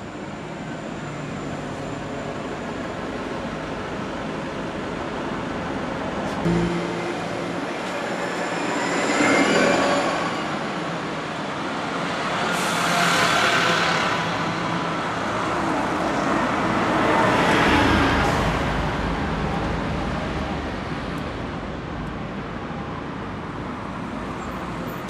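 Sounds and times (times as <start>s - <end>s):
buses driving past: 0.0s - 25.0s.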